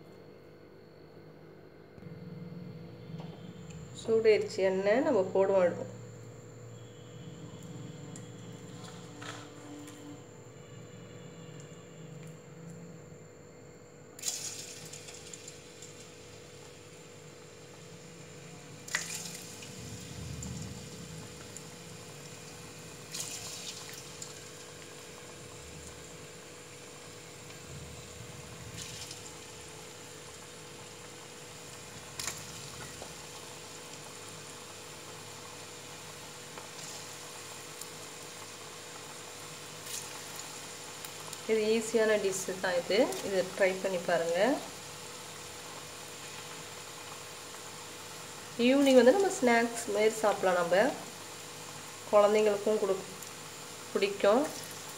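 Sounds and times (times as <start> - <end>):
food deep-frying in hot oil: 4.0 - 11.9, 14.2 - 54.9.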